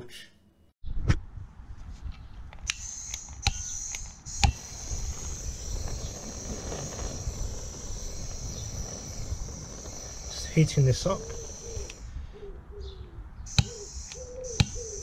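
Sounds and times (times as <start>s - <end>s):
blowtorch igniter clicks: 2.5s - 12.1s, 13.5s - 14.9s
blowtorch gas hiss: 4.4s - 12.1s.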